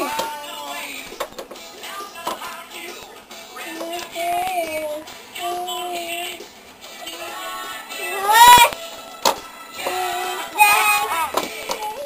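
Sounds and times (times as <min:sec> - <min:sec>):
child imitating engine sounds: 0:08.0 - 0:08.8.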